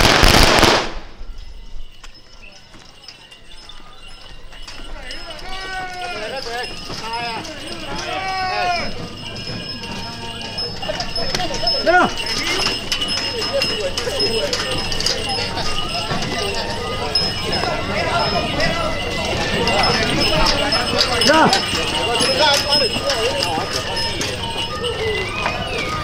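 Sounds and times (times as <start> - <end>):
people shouting: 5.1 - 9.2.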